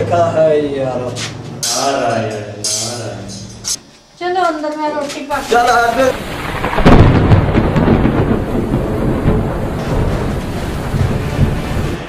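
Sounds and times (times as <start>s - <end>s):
thunder rumbling: 5.4s - 12.0s.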